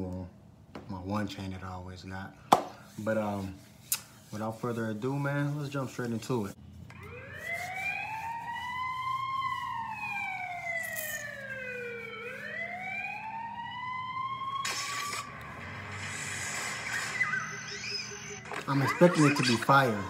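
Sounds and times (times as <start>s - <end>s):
siren wailing: 6.9s - 20.0s.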